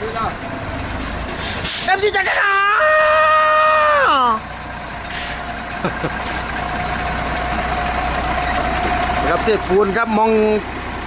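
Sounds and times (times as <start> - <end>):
concrete mixer truck running: 0.0 - 11.0.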